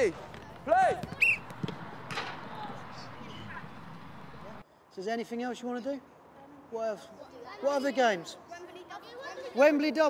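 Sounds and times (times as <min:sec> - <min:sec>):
background hubbub: 0:00.0 - 0:10.0
thud: 0:00.2 - 0:03.4.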